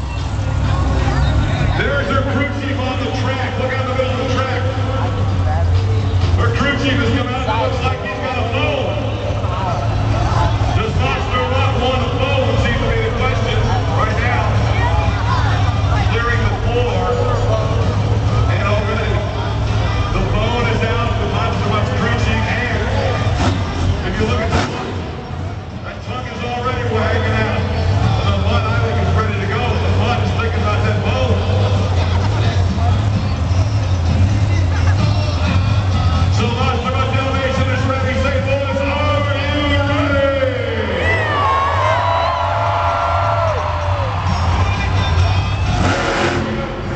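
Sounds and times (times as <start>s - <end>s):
truck engine idling: 0.0s - 41.0s, 43.3s - 46.9s
indistinct voices: 0.0s - 42.1s
crowd noise: 0.0s - 46.9s.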